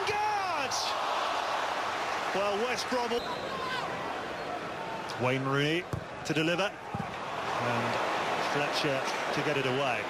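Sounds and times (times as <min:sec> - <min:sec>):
commentator shouting: 0:00.0 - 0:00.9
stadium crowd din: 0:00.0 - 0:10.0.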